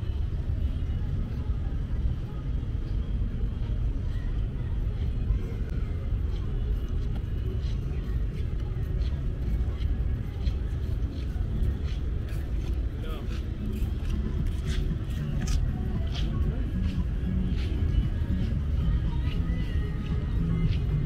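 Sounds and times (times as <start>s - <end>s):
indistinct voices of passers-by: 0.0s - 21.0s
steady low rumble: 0.0s - 21.0s.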